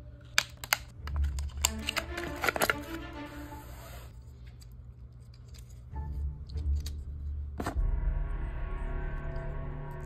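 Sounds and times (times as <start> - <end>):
toy packaging clicks and taps: 0.3 - 2.8
low rumble: 7.0 - 10.0.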